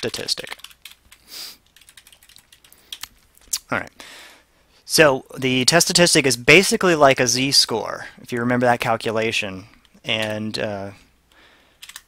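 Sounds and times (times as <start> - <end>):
computer keyboard keystrokes: 0.1 - 3.2, 9.8 - 10.4, 11.8 - 12.0.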